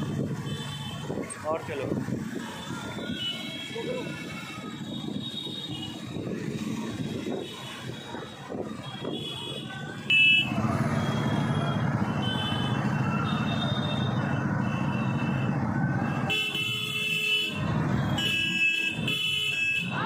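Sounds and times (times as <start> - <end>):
horns honking: 8.6 - 15.6, 16.2 - 20.0
motorcycles riding past: 9.8 - 16.3.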